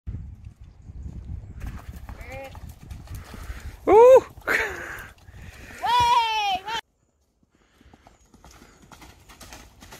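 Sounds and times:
pony hoofbeats on grass: 0.2 - 9.9
person shouting: 3.9 - 4.3.

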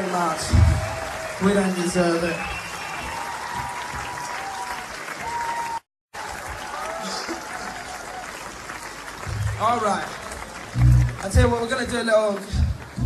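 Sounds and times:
audience applauding and cheering: 0.0 - 13.0.

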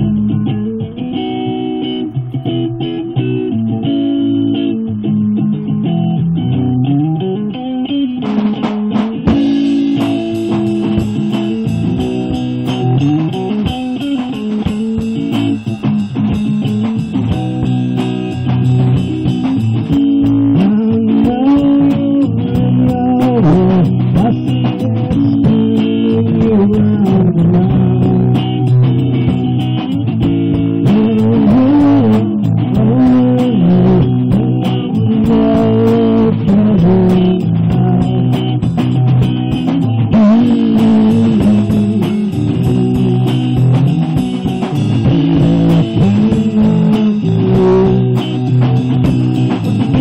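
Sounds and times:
bass guitar: 0.0 - 50.0
electric guitar: 0.0 - 50.0.

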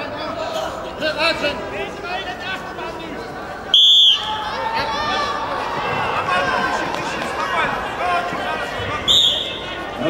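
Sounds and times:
crowd chatter: 0.0 - 10.0
referee's whistle blast: 3.7 - 4.3, 9.1 - 9.7.

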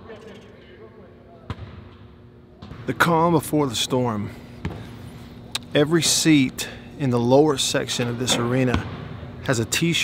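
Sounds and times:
low arena hum: 0.0 - 10.0.

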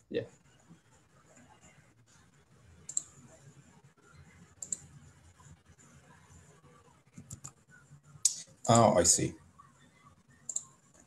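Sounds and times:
computer mouse clicks: 2.8 - 3.3, 4.5 - 4.9, 7.2 - 7.6, 10.4 - 11.0.

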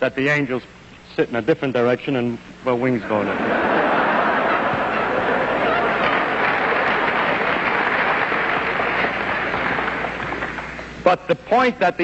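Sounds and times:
audience applauding: 3.3 - 11.0.

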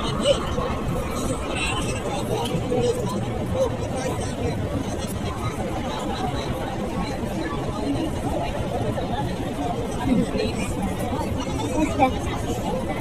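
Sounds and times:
indistinct chatter: 0.0 - 13.0.

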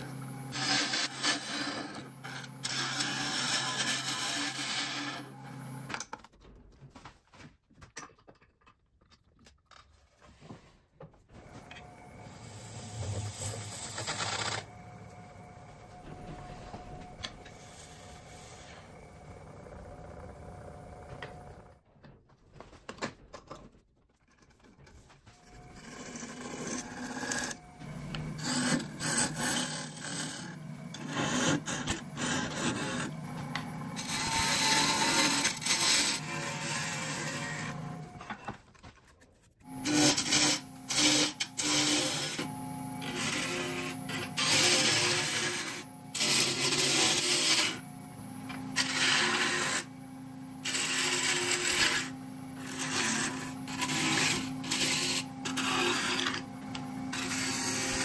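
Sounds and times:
wood lathe humming: 0.0 - 5.9, 11.4 - 21.8, 25.4 - 38.3, 39.6 - 58.0
turning tool hissing cuts: 50.6 - 58.0.

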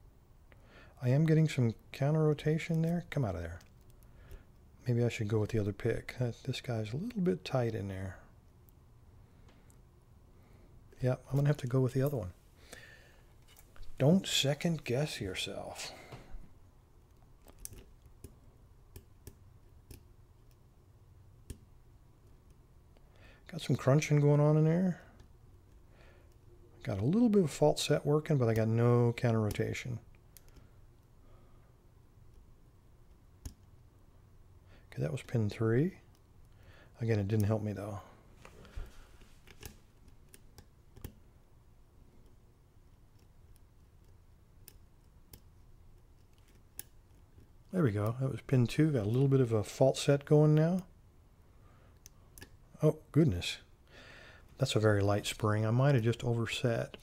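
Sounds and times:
metallic clicks of lock picking: 42.2 - 48.2, 52.0 - 52.6.

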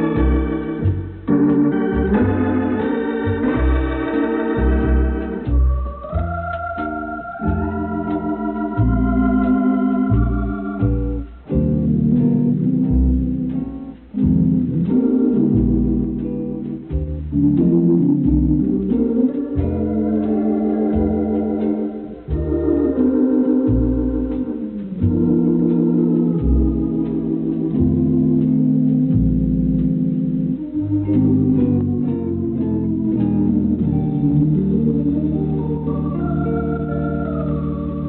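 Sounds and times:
organ playing chords: 0.0 - 38.0.

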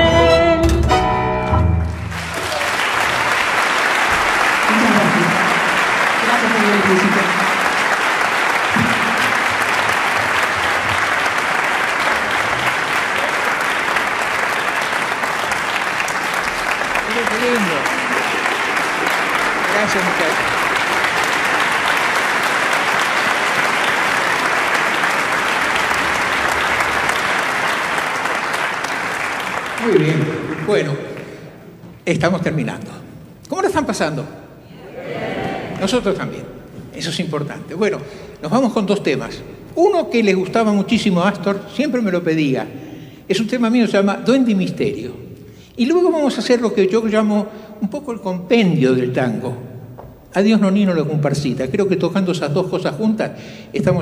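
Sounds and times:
theatre audience applauding: 1.6 - 32.0, 34.7 - 43.3.

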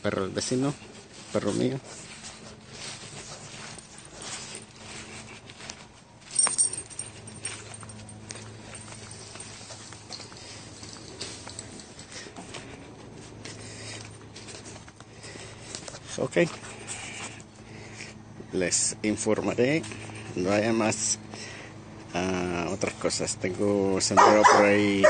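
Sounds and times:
steady low hum: 0.0 - 25.0
dog barking sharply: 24.2 - 24.8.

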